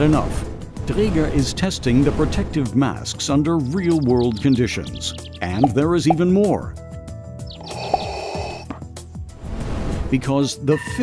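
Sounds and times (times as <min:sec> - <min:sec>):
background music: 0:00.0 - 0:11.0
breath through respirator mask: 0:07.6 - 0:08.7.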